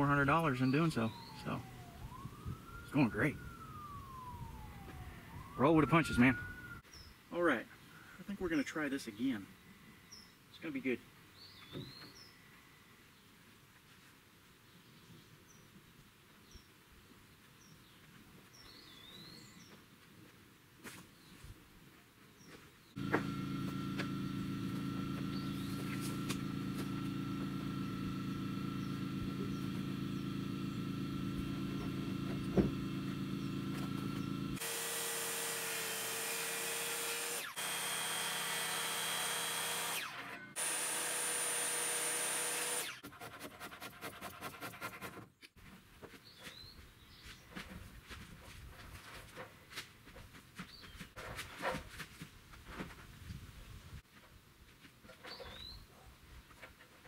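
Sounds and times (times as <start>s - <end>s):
circular saw cutting wood: 23.0s - 45.1s.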